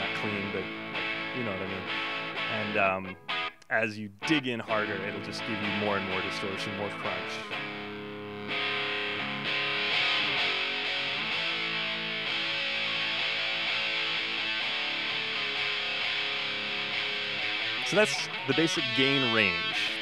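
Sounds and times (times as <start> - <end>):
distorted bass guitar: 0.0 - 3.6, 4.3 - 20.0.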